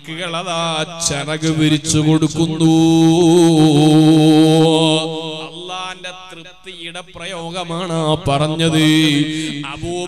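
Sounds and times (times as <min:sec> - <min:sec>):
man chanting melodic phrase: 0:00.0 - 0:10.0.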